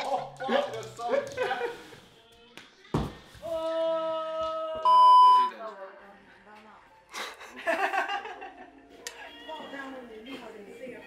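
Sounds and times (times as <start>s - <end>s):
loud pure beep: 4.9s - 5.5s.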